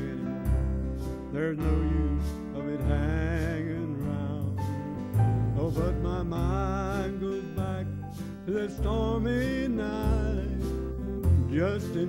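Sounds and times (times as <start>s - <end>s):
acoustic guitar: 0.0s - 12.0s
man singing with vibrato: 0.0s - 12.0s.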